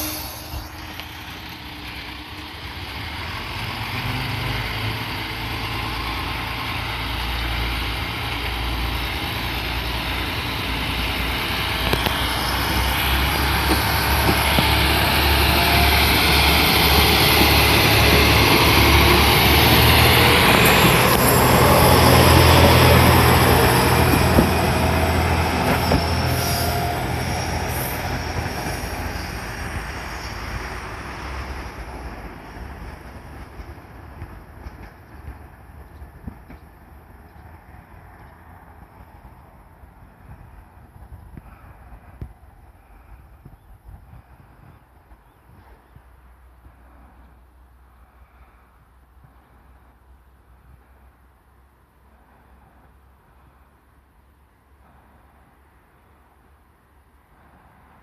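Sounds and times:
wheel and rail rumble: 0:00.0 - 0:51.0
diesel railcar engine drone: 0:00.0 - 0:58.0.

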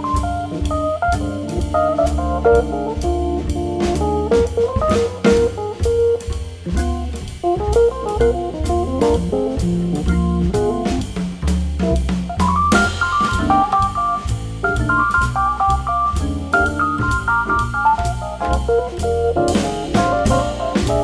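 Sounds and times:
drum kit and cymbals: 0:00.0 - 0:21.0
single-note jazz solo line: 0:00.0 - 0:21.0
strong bass line: 0:00.0 - 0:21.0.

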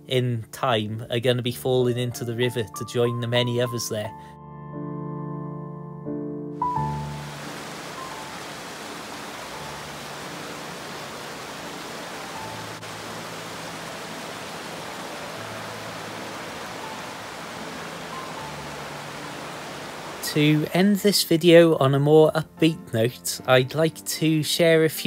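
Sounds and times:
soft piano music: 0:00.0 - 0:25.0
small waterfall pouring: 0:06.8 - 0:20.7
river rushing over stones: 0:06.9 - 0:20.7.

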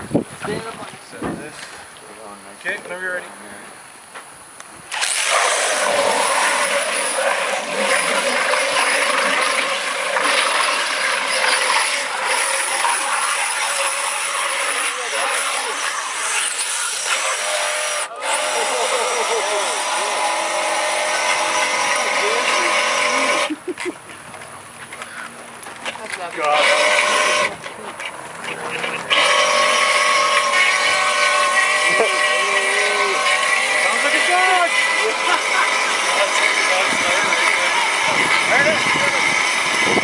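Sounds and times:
electric motor running: 0:04.9 - 0:23.8, 0:26.1 - 0:40.0
tyres churning in mud: 0:04.9 - 0:40.0.

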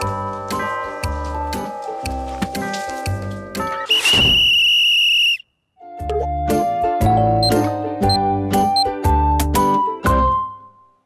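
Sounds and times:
whistle long high blast: 0:03.9 - 0:05.4.

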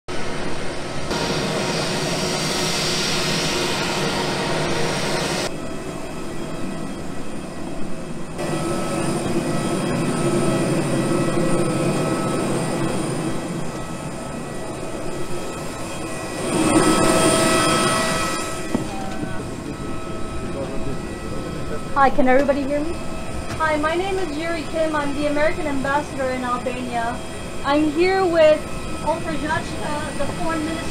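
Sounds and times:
jet engine whining rush: 0:00.1 - 0:30.9.

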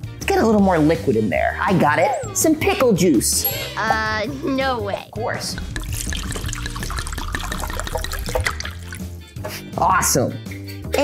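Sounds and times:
liquid pouring into blender jar: 0:05.6 - 0:09.2.

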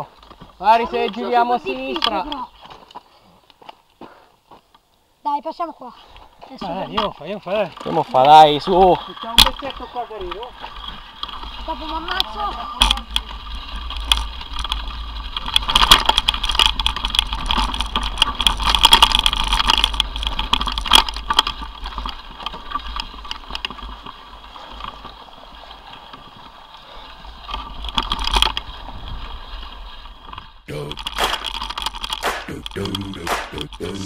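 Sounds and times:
bike rattling and knocking: 0:06.6 - 0:33.0.

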